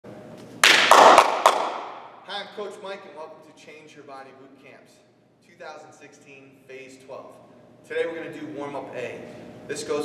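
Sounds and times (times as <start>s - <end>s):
hand claps echoing in a hall: 0.6s - 2.3s.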